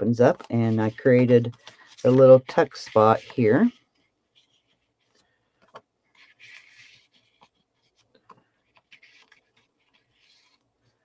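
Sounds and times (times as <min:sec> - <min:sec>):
cardstock rustling and sliding: 0:00.1 - 0:11.0.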